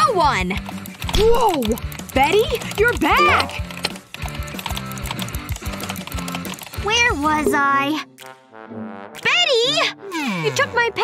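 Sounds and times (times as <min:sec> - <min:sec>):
background music: 0:00.0 - 0:11.0
keyboard keys clicking: 0:00.4 - 0:07.0.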